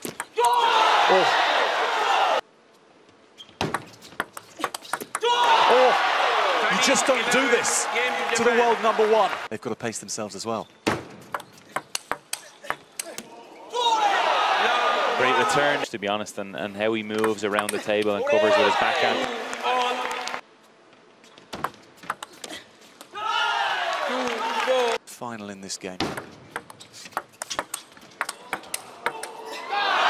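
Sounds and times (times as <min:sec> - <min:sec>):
crowd cheering: 0:00.4 - 0:02.4, 0:05.2 - 0:09.5, 0:13.3 - 0:15.9, 0:18.2 - 0:20.4, 0:23.1 - 0:25.0, 0:28.3 - 0:30.0
table tennis ball clicking: 0:26.2 - 0:29.3.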